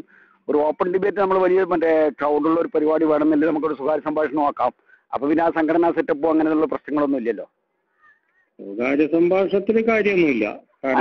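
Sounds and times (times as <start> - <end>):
person talking: 8.6 - 11.0.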